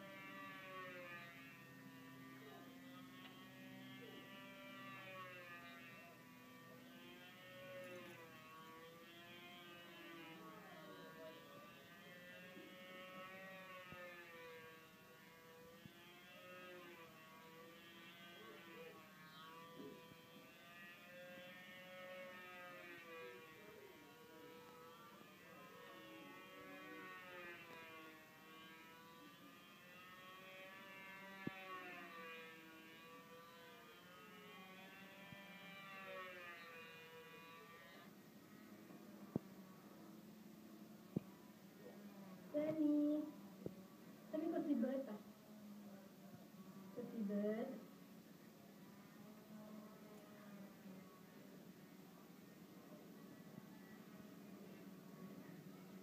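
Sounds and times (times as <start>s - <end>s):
model plane engine circling: 0.0s - 46.0s, 48.6s - 56.0s.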